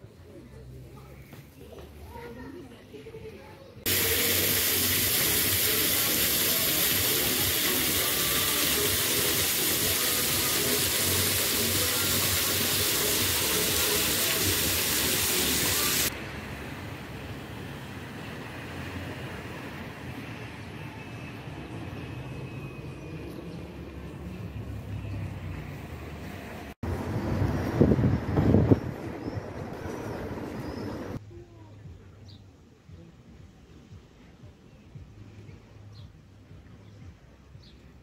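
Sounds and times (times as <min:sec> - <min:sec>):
quiet outdoor background: 0:00.0 - 0:14.4, 0:15.8 - 0:38.0
fountain water jets splashing: 0:03.9 - 0:16.1.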